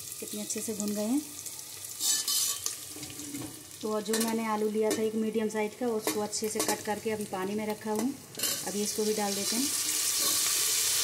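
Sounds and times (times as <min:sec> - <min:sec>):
food sizzling in hot oil: 0:00.0 - 0:11.0
spatula scraping metal pot: 0:02.0 - 0:03.4.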